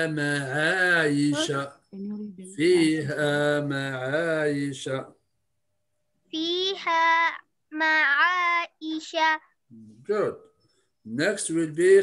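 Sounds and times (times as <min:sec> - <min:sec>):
child chanting melodically: 0:06.3 - 0:09.6.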